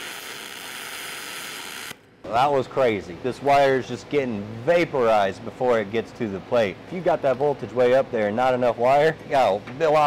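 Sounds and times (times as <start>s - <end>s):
welding arc hissing: 0.0s - 2.0s.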